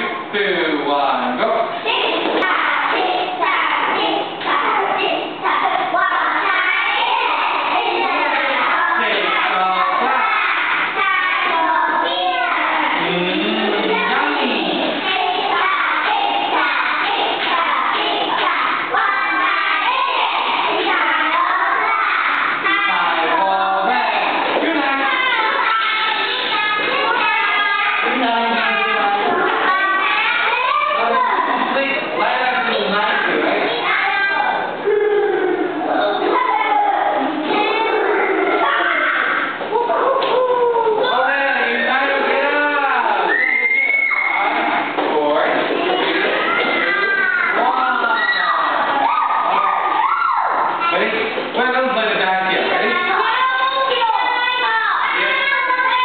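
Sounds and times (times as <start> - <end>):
children chanting in unison: 1.6 - 34.8, 40.9 - 56.0.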